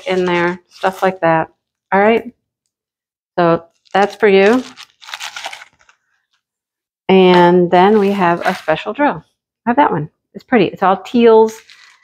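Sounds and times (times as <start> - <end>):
plastic packaging crinkling: 0.0 - 1.2, 3.7 - 6.4, 11.5 - 12.0.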